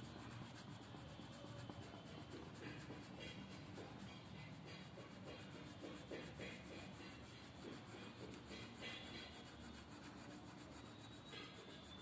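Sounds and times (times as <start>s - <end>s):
pencil scratching on paper: 0.0s - 12.0s.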